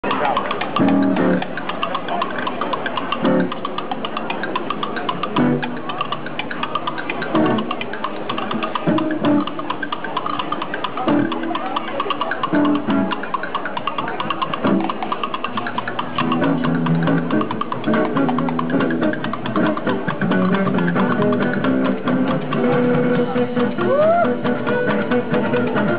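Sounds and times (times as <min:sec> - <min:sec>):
acoustic guitar strumming: 0:00.1 - 0:01.8, 0:02.9 - 0:11.6, 0:12.4 - 0:13.6, 0:14.5 - 0:25.9.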